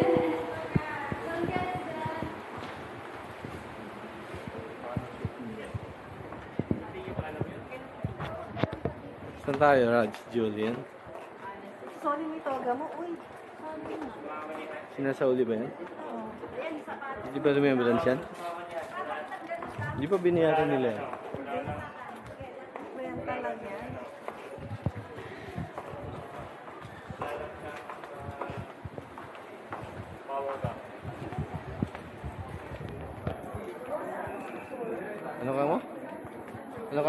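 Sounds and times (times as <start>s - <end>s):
voices talking: 0.0s - 2.4s
faint voices: 0.0s - 15.0s, 15.8s - 37.0s
footsteps on concrete: 18.2s - 35.2s.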